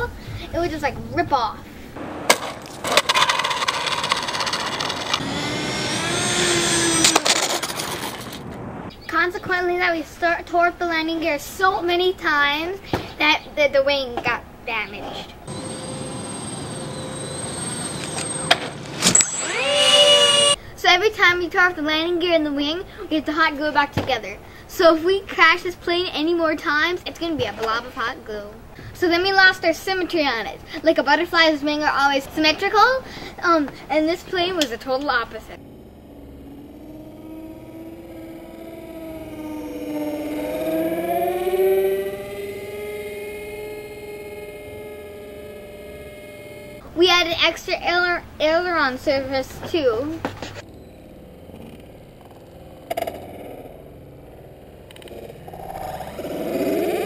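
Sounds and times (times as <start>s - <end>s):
model jet ducted fans whining: 2.6s - 8.7s, 15.4s - 20.6s, 34.1s - 46.9s, 50.6s - 57.0s.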